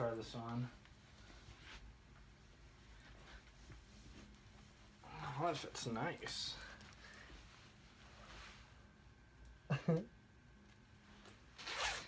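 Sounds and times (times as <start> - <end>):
fleece clothing rasping: 11.6 - 12.0.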